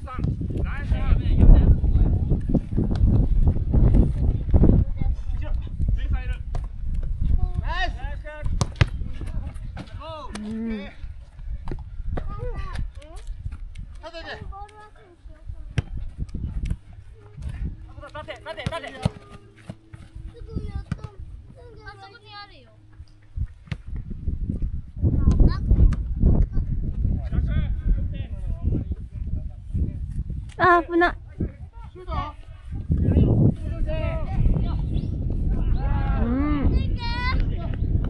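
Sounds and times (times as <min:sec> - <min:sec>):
wind rumble on microphone: 0:00.0 - 0:18.4, 0:19.0 - 0:38.0
ball being kicked: 0:08.4 - 0:10.6, 0:15.7 - 0:20.1, 0:20.8 - 0:21.3, 0:23.6 - 0:24.2.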